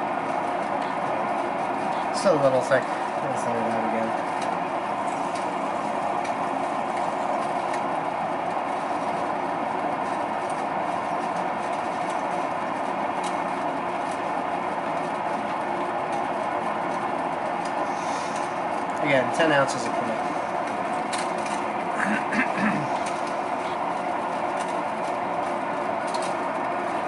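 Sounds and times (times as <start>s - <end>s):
electric potter's wheel running: 0.0s - 27.0s.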